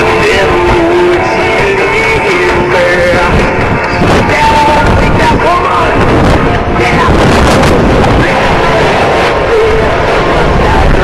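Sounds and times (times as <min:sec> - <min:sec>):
background music: 0:00.0 - 0:11.0
jet engines roaring: 0:00.0 - 0:11.0
wind on microphone: 0:00.0 - 0:11.0.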